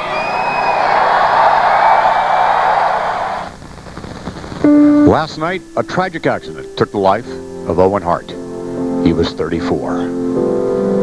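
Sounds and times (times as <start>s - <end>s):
crowd applauding and cheering: 0.0s - 3.5s.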